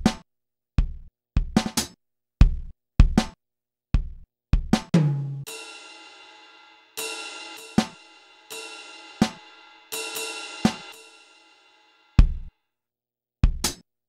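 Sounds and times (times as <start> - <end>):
low drum hits: 5.0 - 11.2
cymbal crash ringing: 5.5 - 12.3.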